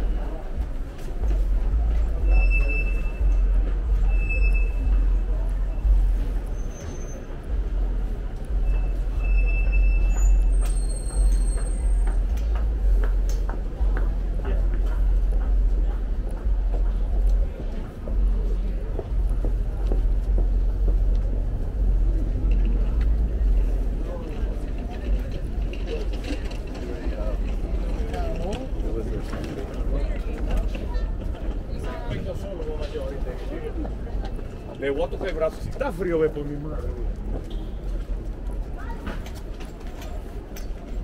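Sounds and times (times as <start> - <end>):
indistinct voices: 0.0 - 41.0
low rumble of traffic: 0.0 - 41.0.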